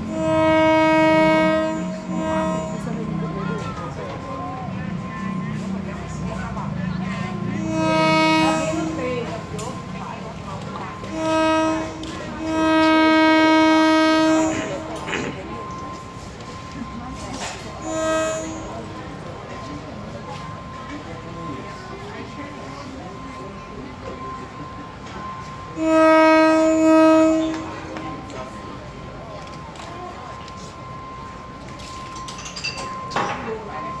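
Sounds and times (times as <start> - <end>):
train horn blasts: 0.0 - 3.4, 7.3 - 9.3, 10.8 - 16.6, 17.4 - 19.2, 25.2 - 28.6
market crowd voices: 0.0 - 34.0
steady high tone: 0.0 - 34.0.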